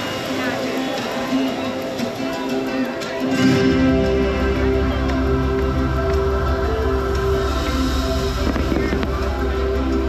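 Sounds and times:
orchestral show music: 0.0 - 10.0
pyrotechnics crackling burst: 7.4 - 10.0.

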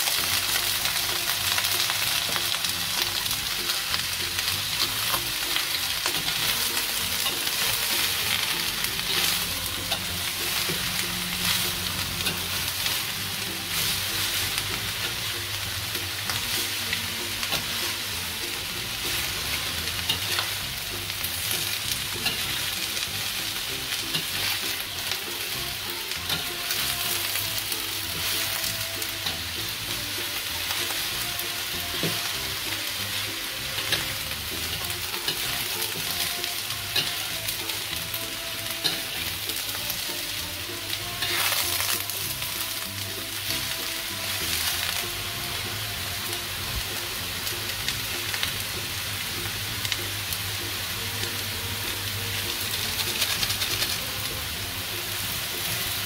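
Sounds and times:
vegetables sizzling in a wok: 0.0 - 56.0
metal spatula scraping a pan: 0.2 - 46.5.

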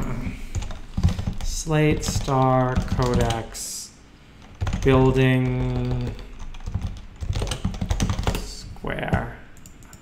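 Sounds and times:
keyboard typing: 0.5 - 3.4, 4.4 - 10.0.

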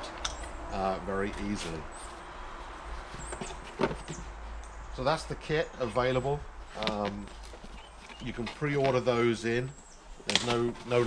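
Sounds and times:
cardboard box knocks and rustles: 3.2 - 4.3.

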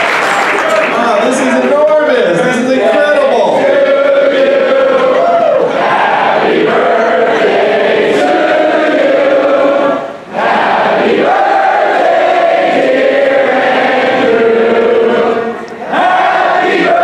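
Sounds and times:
crowd chanting in unison: 3.4 - 17.0.

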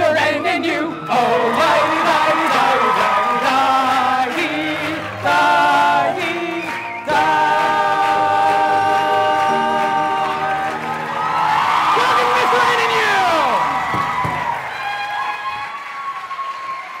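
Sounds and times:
men singing: 0.0 - 10.9
audience cheering and applauding: 0.0 - 17.0
whoops: 0.9 - 4.0, 10.2 - 17.0.

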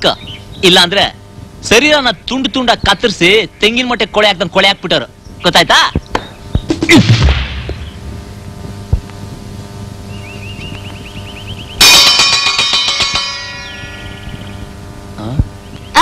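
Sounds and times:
punch sound effect: 6.8 - 8.0
loud metallic clang: 6.9 - 8.0, 11.8 - 14.3.

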